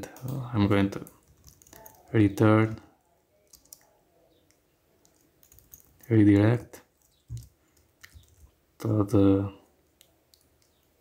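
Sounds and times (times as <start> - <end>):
computer keyboard key clicks: 5.0 - 6.0.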